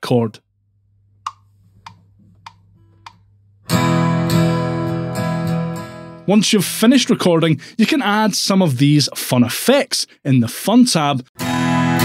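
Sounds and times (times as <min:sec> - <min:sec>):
acoustic guitar strummed: 0:03.7 - 0:06.3, 0:11.4 - 0:12.0.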